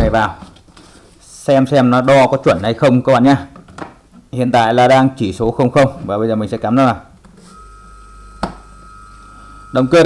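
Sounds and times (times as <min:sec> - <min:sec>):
electric motor humming: 0:07.5 - 0:10.0
motor high whine: 0:07.5 - 0:10.0.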